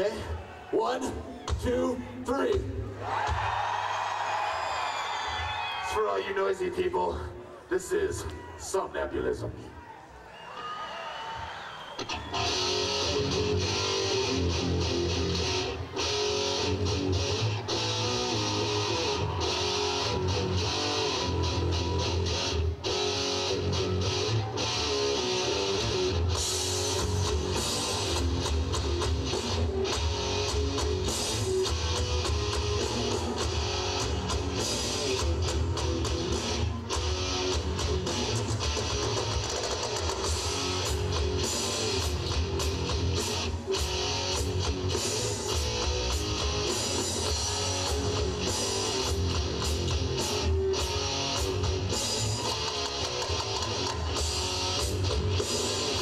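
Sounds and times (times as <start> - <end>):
live heavy metal band: 12.0 - 56.0.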